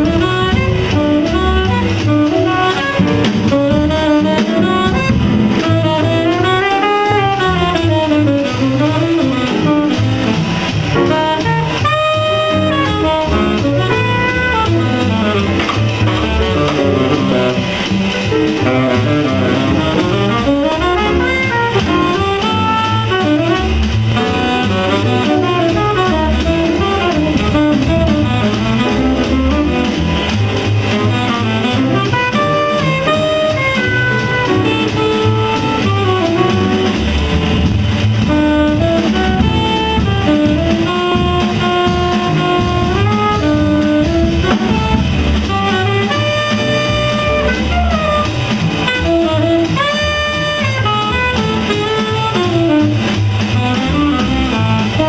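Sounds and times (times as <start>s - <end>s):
double bass: 0.0s - 55.0s
drum kit: 0.0s - 55.0s
saxophone melody: 0.0s - 55.0s.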